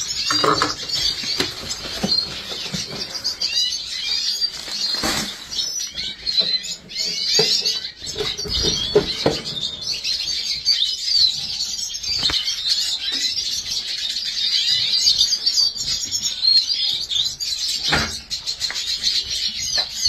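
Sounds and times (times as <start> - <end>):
finches chirping and twittering: 0.0 - 20.0.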